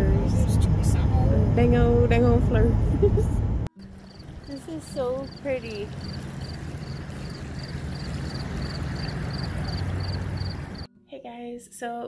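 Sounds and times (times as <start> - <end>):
cricket chirping: 3.8 - 10.9
water rushing down rocks: 4.2 - 10.9.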